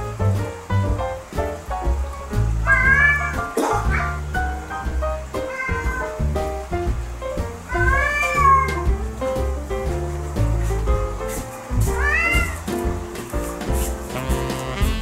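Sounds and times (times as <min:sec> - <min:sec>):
background music: 0:00.0 - 0:15.0
cat meowing: 0:02.6 - 0:04.2, 0:05.3 - 0:06.3, 0:07.7 - 0:08.9, 0:11.8 - 0:12.7.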